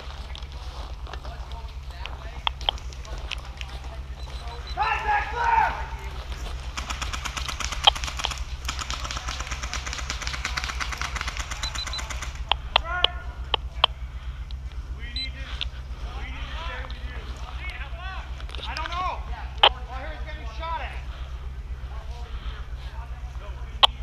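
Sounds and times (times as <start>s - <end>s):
voices calling out: 0.0s - 24.0s
airsoft gun firing full-auto: 6.8s - 12.5s.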